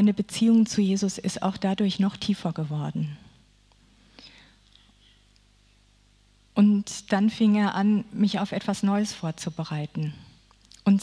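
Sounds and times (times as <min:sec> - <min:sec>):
low steady hum: 0:00.0 - 0:11.0
faint breath: 0:03.8 - 0:05.8.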